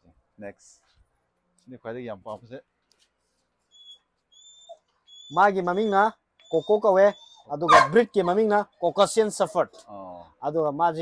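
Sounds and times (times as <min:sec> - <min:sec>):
dog whining: 0:03.8 - 0:08.4.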